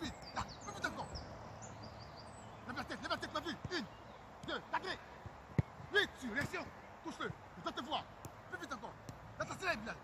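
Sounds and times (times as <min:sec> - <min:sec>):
soccer ball kicked thump: 0:05.2 - 0:06.7.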